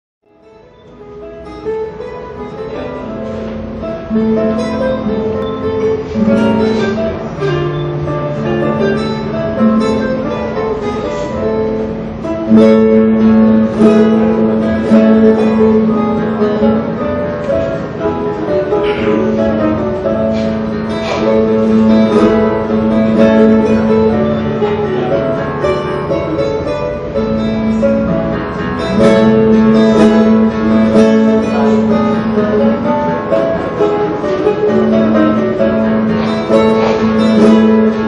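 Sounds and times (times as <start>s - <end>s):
fingerstyle classical guitar: 0.2s - 38.0s.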